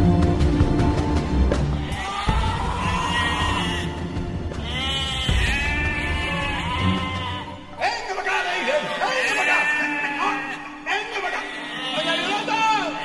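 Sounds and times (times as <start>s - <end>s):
dramatic background music: 0.0s - 13.0s
sheep bleating: 1.8s - 4.0s, 4.6s - 13.0s.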